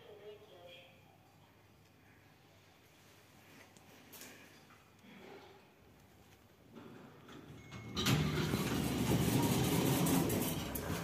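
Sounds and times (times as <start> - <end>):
lift doors sliding open: 7.2 - 11.0.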